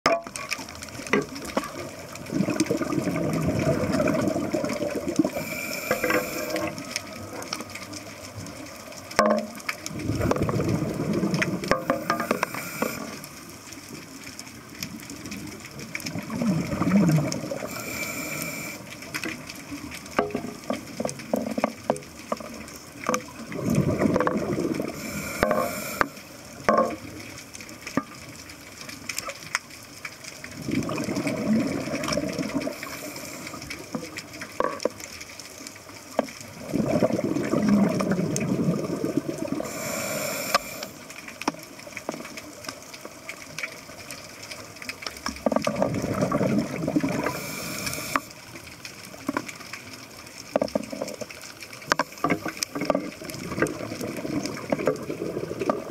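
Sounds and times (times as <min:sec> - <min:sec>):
gurgle of exhaled bubbles: 0:00.7 - 0:13.4, 0:14.8 - 0:27.1, 0:30.4 - 0:34.9, 0:36.4 - 0:41.0, 0:45.1 - 0:48.3, 0:50.7 - 0:55.9
regulator hiss on inhale: 0:05.2 - 0:07.4, 0:11.8 - 0:13.4, 0:17.5 - 0:19.3, 0:24.9 - 0:26.5, 0:32.6 - 0:34.0, 0:39.6 - 0:41.2, 0:47.1 - 0:48.4.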